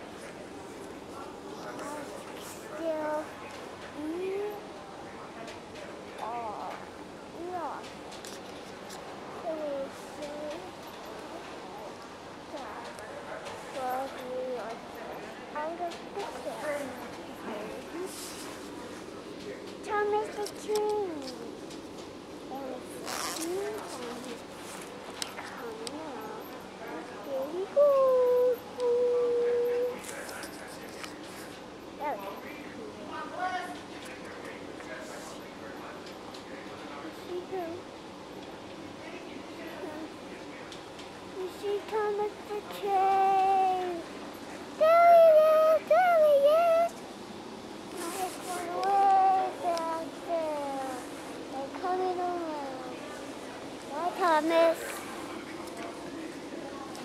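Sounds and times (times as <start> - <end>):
young child singing: 41.4 - 44.0, 44.8 - 47.0, 48.0 - 53.0
child calling: 44.8 - 46.9.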